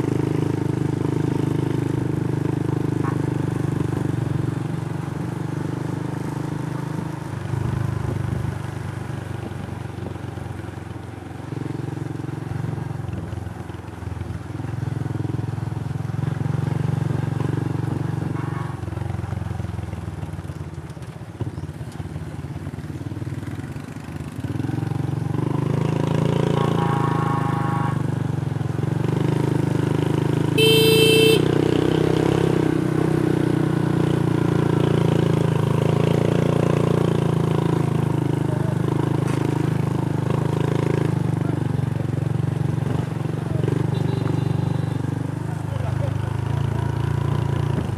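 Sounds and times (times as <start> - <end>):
horn toot: 26.5 - 28.0, 30.6 - 31.6
small motorcycle engine running: 29.3 - 32.4, 33.6 - 47.9.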